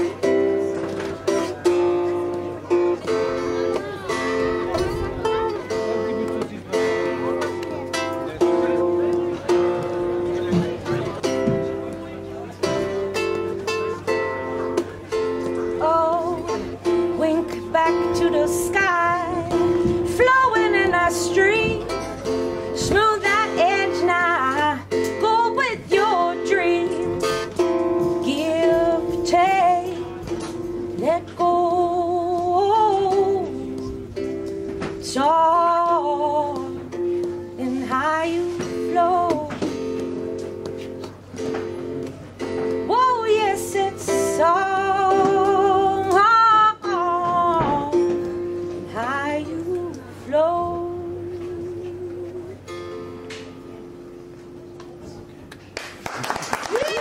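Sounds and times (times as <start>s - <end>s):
acoustic blues on plucked strings: 0.0s - 55.8s.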